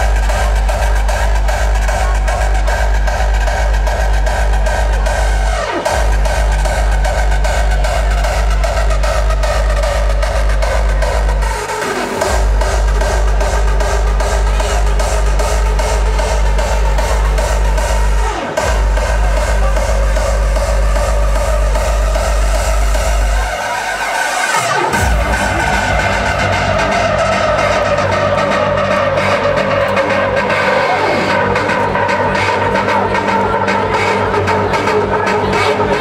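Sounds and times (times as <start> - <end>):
hardstyle music over sound system: 0.0 - 36.0.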